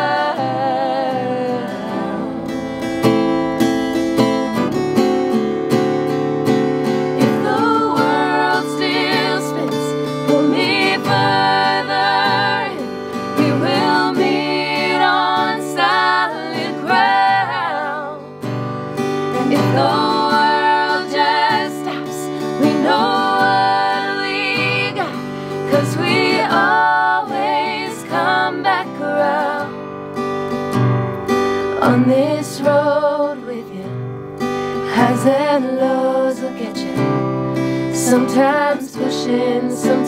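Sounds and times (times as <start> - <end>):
women singing in harmony: 0.0 - 2.8, 7.2 - 18.5, 19.2 - 29.8, 31.8 - 34.0, 34.8 - 37.2, 38.0 - 40.0
acoustic guitar strumming: 0.0 - 40.0.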